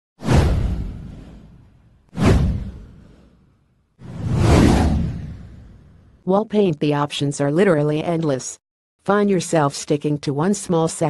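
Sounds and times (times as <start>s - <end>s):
whoosh sound effects: 2.2s - 6.0s.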